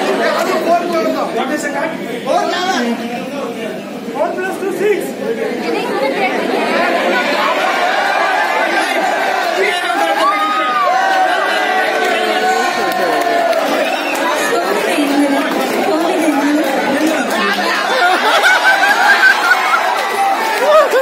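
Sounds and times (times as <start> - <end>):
audience chatter: 0.0 - 21.0.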